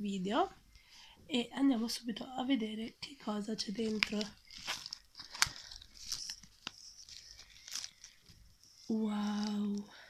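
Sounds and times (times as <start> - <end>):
package wrapping crinkling and tearing: 3.8 - 10.0.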